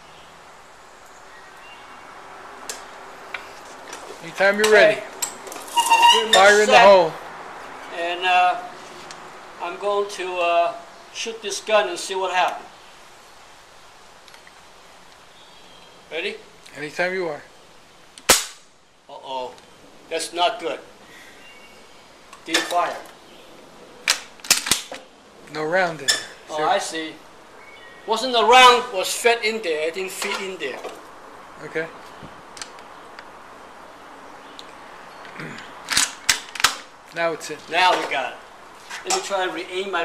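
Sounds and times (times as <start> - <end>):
open-air background noise: 0.0 - 40.0.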